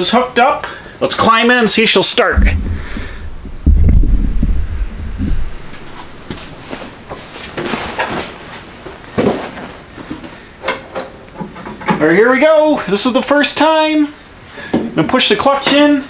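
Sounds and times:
sharp thumps: 2.3s - 7.2s
knocks and creaks: 2.4s - 8.2s
clothing rustling: 2.4s - 9.8s.

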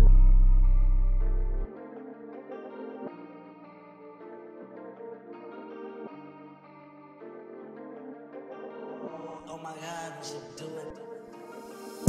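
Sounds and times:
deep bass note: 0.0s - 1.7s
electric guitar melody with echo: 0.0s - 12.0s.

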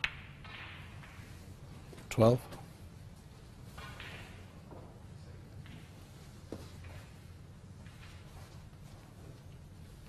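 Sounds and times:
snooker balls clicking: 0.0s - 2.6s, 3.7s - 9.7s
balls rolling across cloth: 0.1s - 10.0s.

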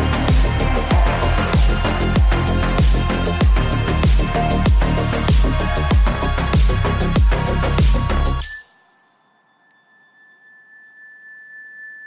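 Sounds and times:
fainter higher tone: 8.4s - 12.0s.

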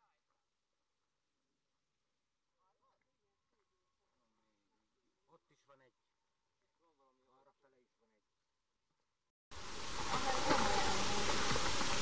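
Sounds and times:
distant voices talking: 9.6s - 12.0s.

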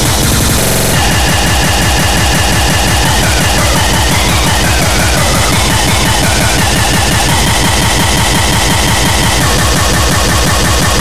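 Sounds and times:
buzzing wall of noise: 0.0s - 11.0s
distorted kick and bass pulses: 0.0s - 11.0s.

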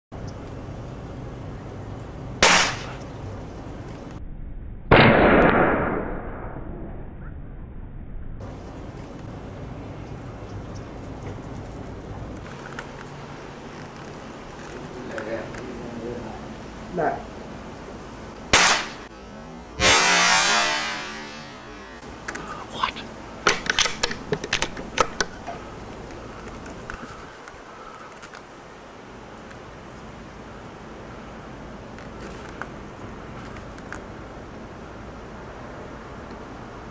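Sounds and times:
low background noise: 0.1s - 4.2s, 8.4s - 36.9s
airgun shot: 2.4s - 3.0s, 4.9s - 6.8s, 18.5s - 19.1s, 19.8s - 21.9s.

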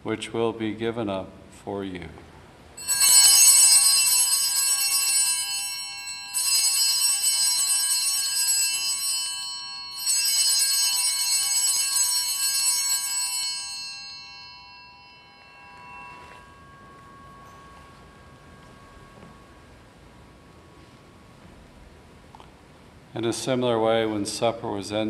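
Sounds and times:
altar bells ringing: 2.8s - 21.9s.

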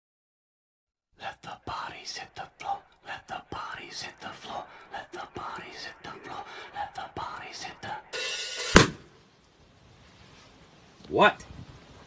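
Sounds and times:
person whispering: 1.2s - 8.2s.

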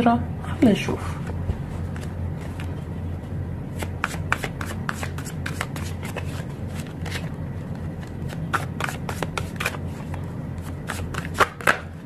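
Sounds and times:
steady low hum: 0.0s - 12.0s
cards being shuffled: 1.8s - 2.8s, 3.7s - 12.0s.

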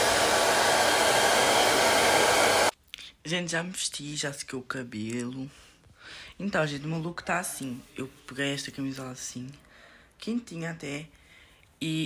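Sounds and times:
hair dryer blowing: 0.0s - 2.7s.

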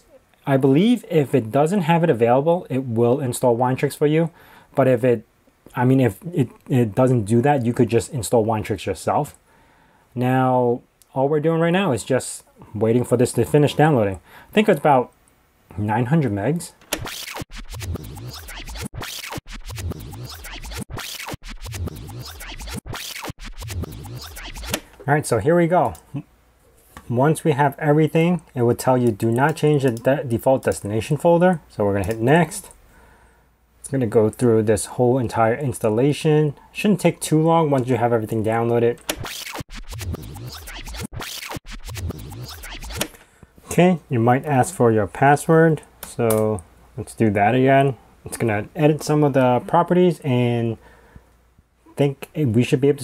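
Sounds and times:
record scratching: 16.9s - 24.9s, 39.0s - 43.2s
short electronic beat: 17.0s - 24.9s, 39.1s - 43.1s.

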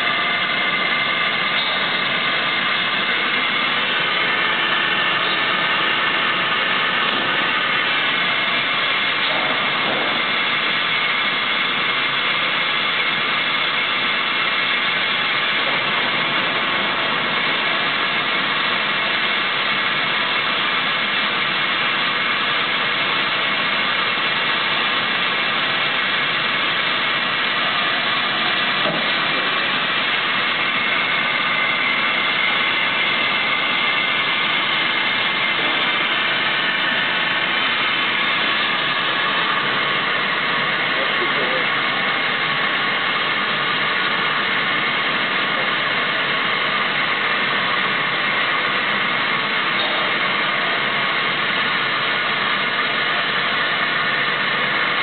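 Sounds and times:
machine drone: 0.0s - 55.0s.

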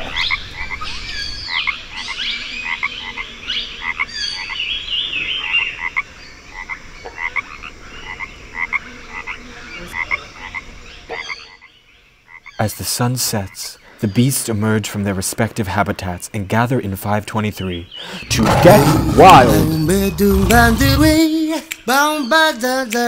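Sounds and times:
frogs croaking: 1.5s - 4.7s, 5.4s - 12.6s.

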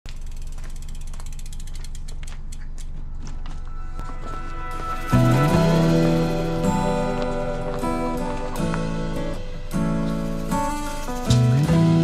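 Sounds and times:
bicycle freehub ticking: 0.1s - 3.2s.

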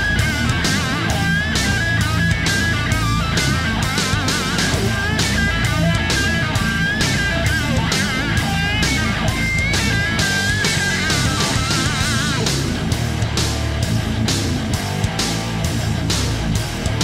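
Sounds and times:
bass: 0.0s - 17.0s
drum beat: 0.0s - 17.0s
electric guitar lead melody: 0.0s - 17.0s.

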